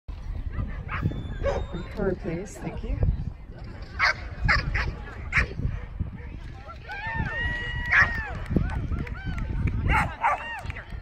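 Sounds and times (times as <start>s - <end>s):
wind on microphone: 0.1s - 11.0s.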